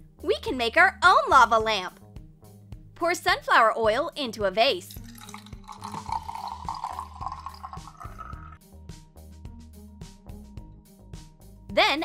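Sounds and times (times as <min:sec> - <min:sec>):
background music: 0:00.0 - 0:12.0
oil pouring into glass: 0:04.9 - 0:08.6.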